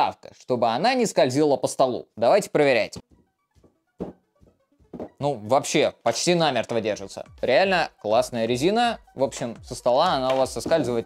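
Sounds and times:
faint background music: 0.0s - 11.0s
speaker thunk on wooden desk: 4.0s - 4.2s.

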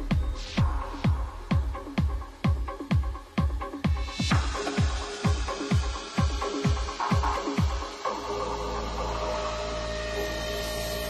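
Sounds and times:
low bass drone: 0.0s - 11.0s.

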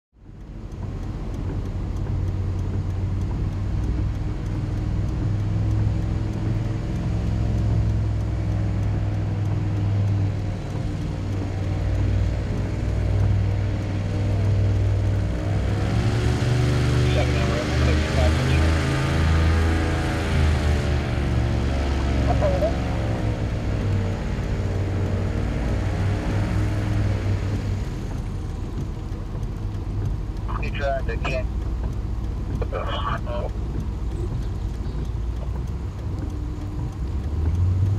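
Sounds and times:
airboat engine and propeller: 0.8s - 37.9s.

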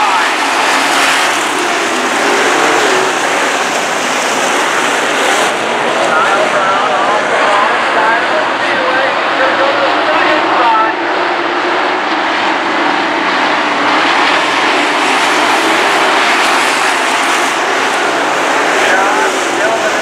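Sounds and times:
race car engines roaring: 0.0s - 20.0s.

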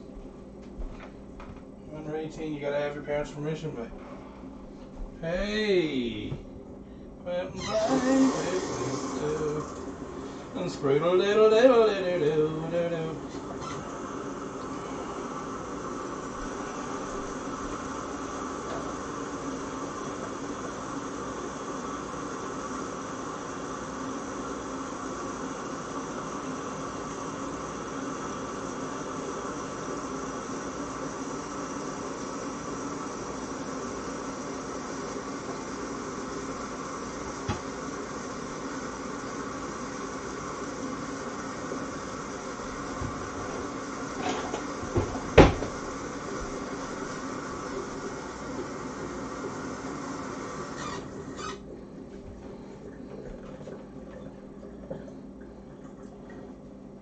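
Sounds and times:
steady mechanical hum: 0.0s - 57.0s.

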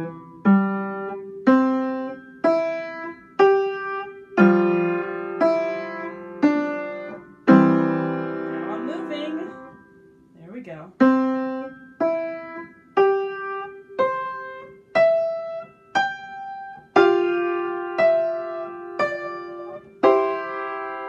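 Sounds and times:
upright piano simple melody: 0.0s - 21.0s.

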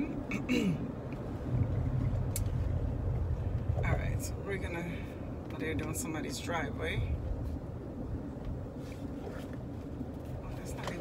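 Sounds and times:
road and engine rumble in car: 0.0s - 11.0s.

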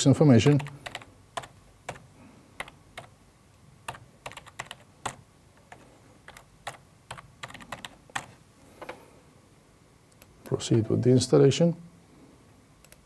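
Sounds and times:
keyboard typing: 0.4s - 3.1s, 3.9s - 8.4s.

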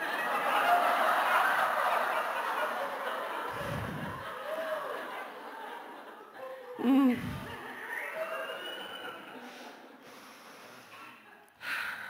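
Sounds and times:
audience laughing: 0.0s - 11.5s.

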